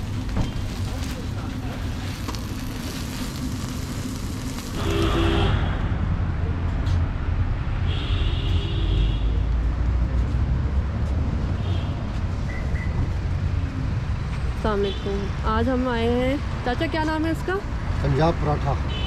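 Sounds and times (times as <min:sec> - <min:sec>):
flatbread sizzling on griddle: 0:00.0 - 0:05.6
rumble of passing vehicles: 0:00.0 - 0:19.0.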